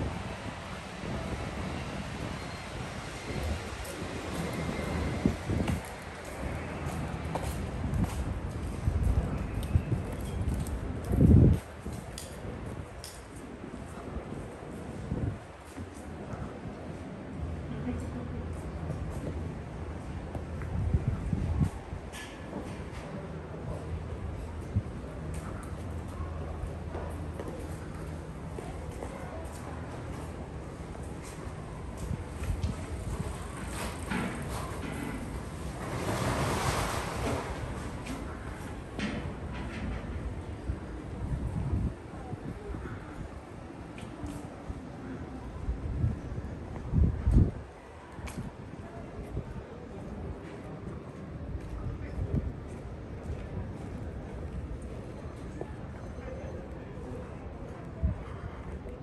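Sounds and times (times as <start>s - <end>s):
street rushing noise: 0.0s - 56.4s
footsteps on tiled pavement: 3.1s - 14.2s, 18.0s - 34.9s, 46.0s - 55.8s.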